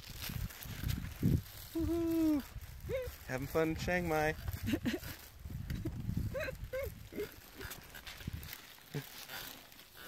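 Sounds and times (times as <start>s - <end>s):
person laughing: 1.8s - 3.1s, 4.6s - 8.0s.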